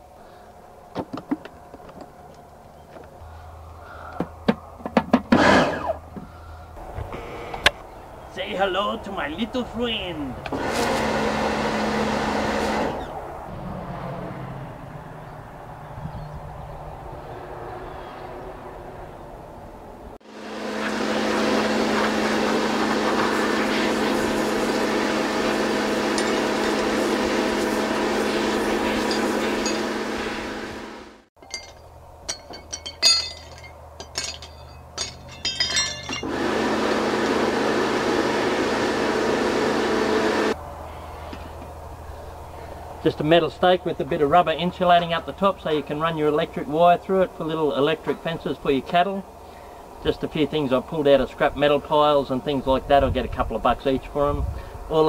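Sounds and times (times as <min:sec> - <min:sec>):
pressure washer spraying: 0:20.4 - 0:30.9, 0:36.2 - 0:40.6
metal clinks and knocks: 0:29.0 - 0:30.0, 0:31.4 - 0:36.3.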